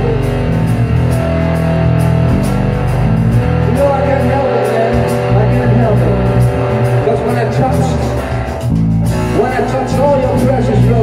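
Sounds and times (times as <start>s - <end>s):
electric bass: 0.0s - 11.0s
electric guitar: 0.0s - 11.0s.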